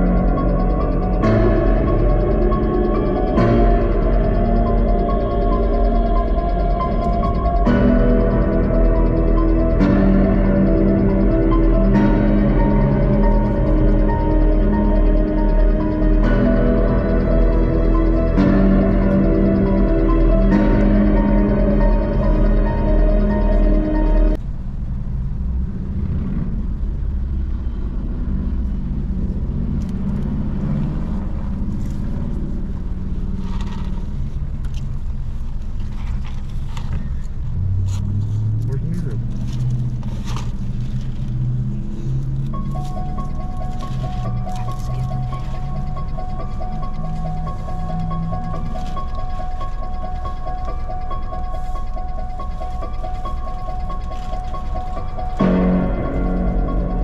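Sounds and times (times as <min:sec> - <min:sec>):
steady high tone: 0:00.0 - 0:24.4, 0:38.7 - 0:57.0
car engine idling: 0:00.0 - 0:57.0.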